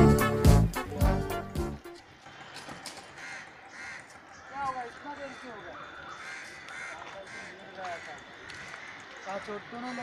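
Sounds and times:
crows cawing: 0:02.1 - 0:10.0.

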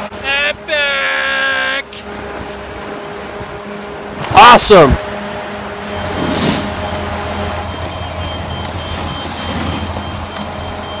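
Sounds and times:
snowmaking fan gun drone: 0:00.0 - 0:11.0.

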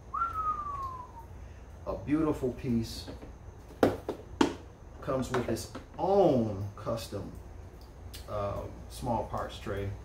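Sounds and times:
man whistling: 0:00.0 - 0:01.4.

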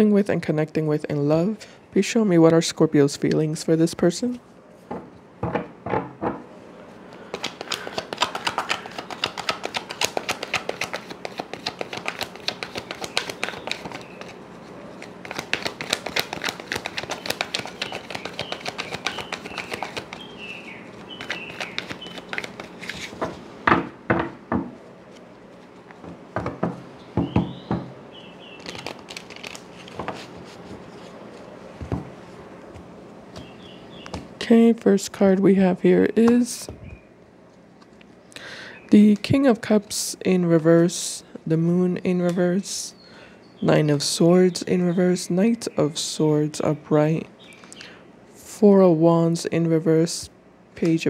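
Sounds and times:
cards being shuffled: 0:07.1 - 0:20.3, 0:20.9 - 0:23.4, 0:24.8 - 0:26.6, 0:28.6 - 0:34.3.

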